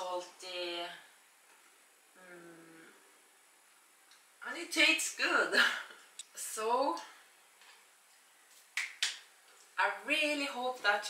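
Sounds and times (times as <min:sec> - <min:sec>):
hands clapping: 0:08.7 - 0:09.3.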